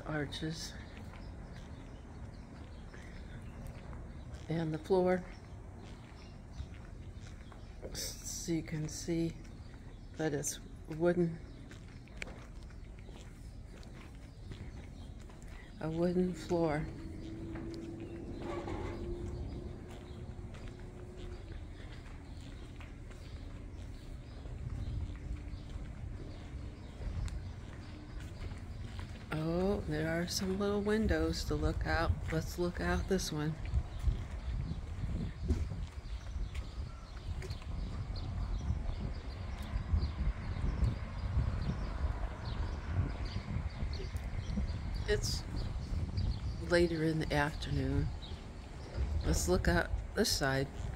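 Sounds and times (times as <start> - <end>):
birds calling: 0.0 - 50.9
steady low hum: 0.0 - 50.9
footsteps on wooden planks: 5.3 - 8.0, 9.4 - 16.0, 16.8 - 29.3, 33.6 - 39.8
wind rumble on microphone: 10.6 - 50.9.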